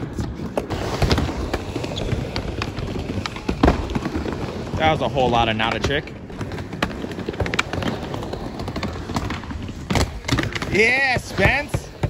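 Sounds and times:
skateboard clacks and knocks: 0.0s - 12.0s
skateboard wheels rumbling: 0.0s - 12.0s.

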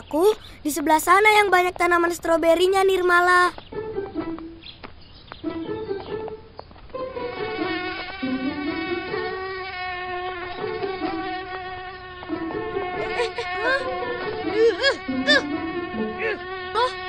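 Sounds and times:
cartoon bee buzzing: 5.4s - 6.4s, 7.0s - 17.0s.

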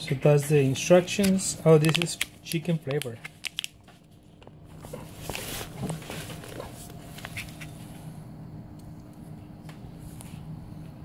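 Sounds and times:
steady low hum: 0.0s - 11.0s
foil pouch crinkling: 0.8s - 7.7s.

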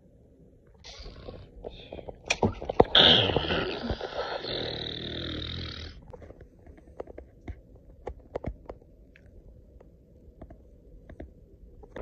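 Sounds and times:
person making throaty hissing noise: 3.0s - 6.0s.

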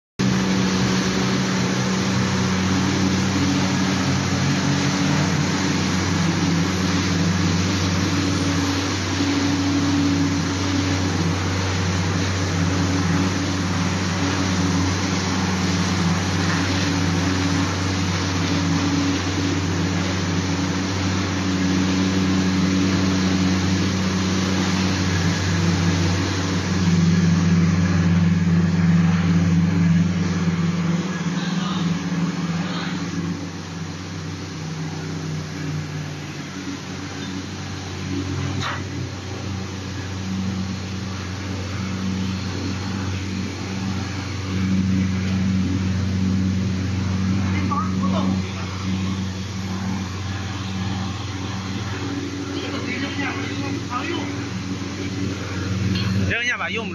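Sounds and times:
low drone tones: 0.2s - 56.9s
machine hum: 0.2s - 56.9s
noisy machine whirr: 0.2s - 56.9s.

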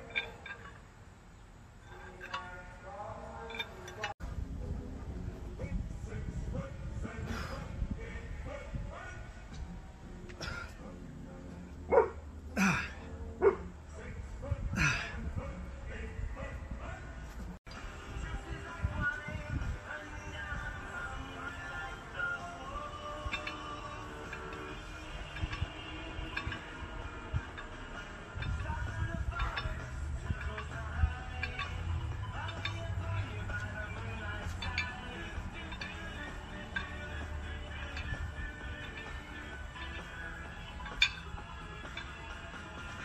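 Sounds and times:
music: 1.9s - 43.0s
dog barking: 11.9s - 12.2s, 13.4s - 13.7s.

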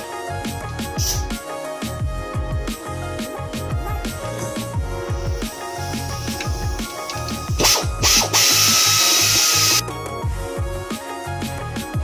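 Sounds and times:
electronic music with steady beat: 0.0s - 12.0s
air ratchet running: 5.1s - 9.8s.

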